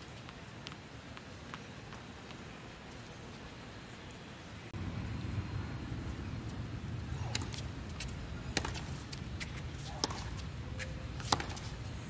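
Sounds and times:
tennis ball bouncing on hard court: 7.3 - 10.5, 11.2 - 11.8.

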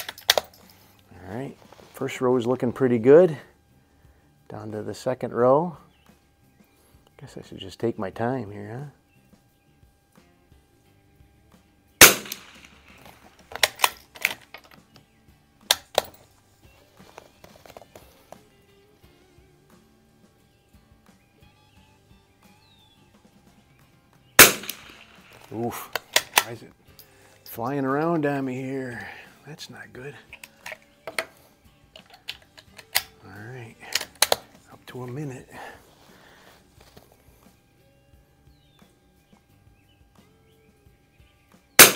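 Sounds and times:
metallic clicks of rifle bolt: 0.0 - 0.8, 12.0 - 15.1, 15.7 - 16.2, 24.4 - 27.1, 30.3 - 33.2, 33.8 - 34.6
rifle shot: 12.0 - 13.9, 24.4 - 25.4.

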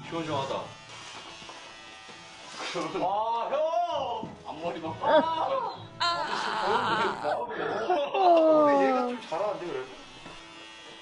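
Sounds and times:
electric hair clippers buzzing: 0.2 - 3.1, 9.1 - 11.0.

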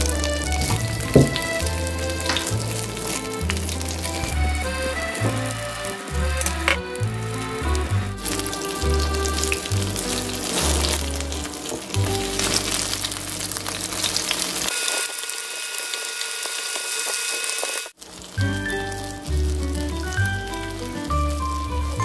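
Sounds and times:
fish fillets sizzling in oil: 0.0 - 4.3, 8.2 - 22.0
background music with bass line: 0.0 - 13.9, 18.4 - 22.0.

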